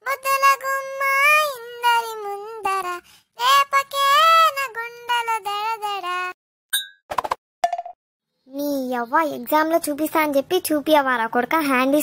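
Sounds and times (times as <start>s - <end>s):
child singing: 0.0s - 6.4s.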